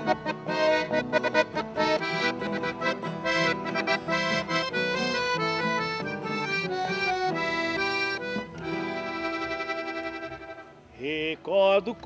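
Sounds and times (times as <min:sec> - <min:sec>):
piano accordion playing a ballad: 0:00.0 - 0:10.9.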